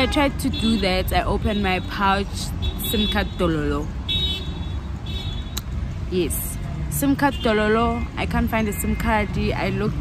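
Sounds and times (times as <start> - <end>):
low rumble of traffic: 0.0 - 10.0.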